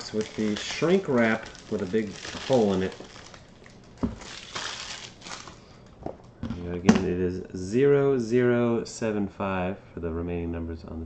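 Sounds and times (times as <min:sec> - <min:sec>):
plastic wrap crinkling: 0:00.0 - 0:06.4.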